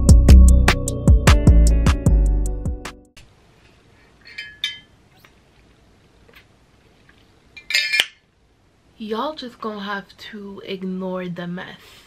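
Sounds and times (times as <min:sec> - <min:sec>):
glass jar clinking: 0:04.2 - 0:05.0, 0:07.6 - 0:08.2.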